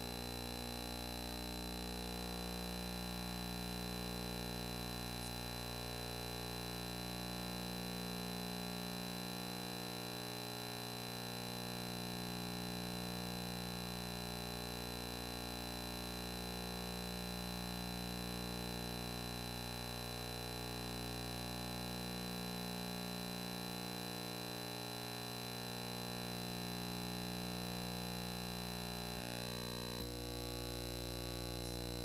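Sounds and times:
electrical hum: 0:00.0 - 0:11.1, 0:20.1 - 0:32.0
thin high-pitched whine: 0:31.2 - 0:32.0.

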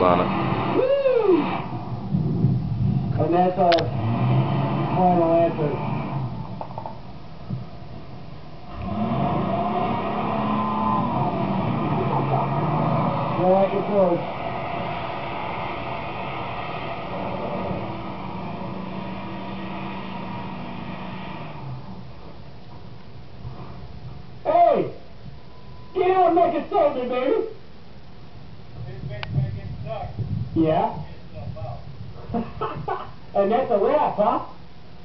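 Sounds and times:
truck engine droning under load: 0:03.8 - 0:06.9, 0:08.6 - 0:22.2
man laughing in bursts: 0:32.3 - 0:33.2.

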